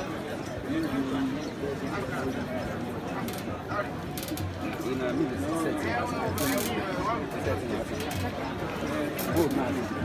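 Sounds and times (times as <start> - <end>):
crowd of students babbling: 0.0 - 10.0.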